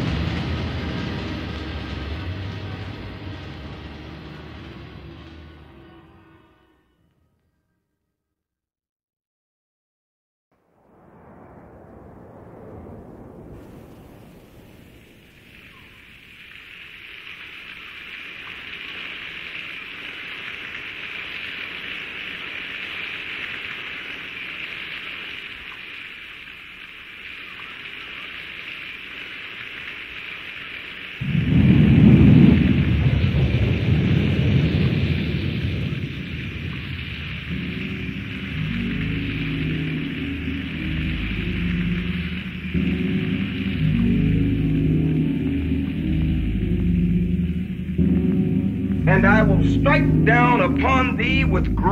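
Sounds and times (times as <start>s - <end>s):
thunder rolling: 0.0s - 6.6s, 10.6s - 51.9s
rain hissing: 0.0s - 7.0s, 10.6s - 51.9s
low bass beat: 37.4s - 51.9s.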